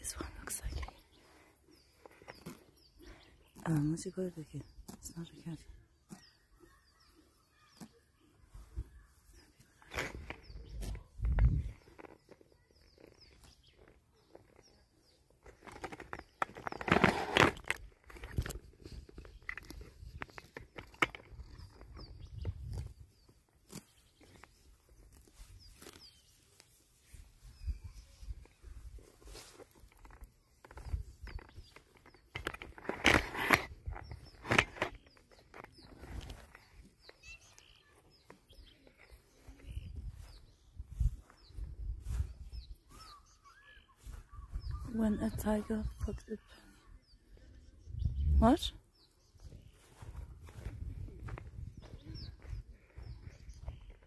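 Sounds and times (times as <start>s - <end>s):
faint bird chirps: 4.5s - 16.8s, 21.5s - 32.3s, 33.9s - 54.0s
rustling: 8.5s - 40.3s
wind rumble on microphone: 10.0s - 12.0s, 21.2s - 23.2s, 39.3s - 43.4s, 44.0s - 46.4s, 47.0s - 54.0s.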